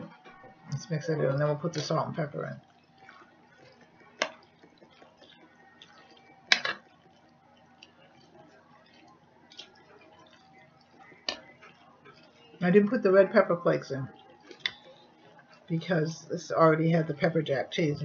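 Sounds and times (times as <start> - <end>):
thick mixture being stirred: 0.0 - 18.0
faint clicks and scrapes: 2.6 - 12.6, 14.1 - 15.7.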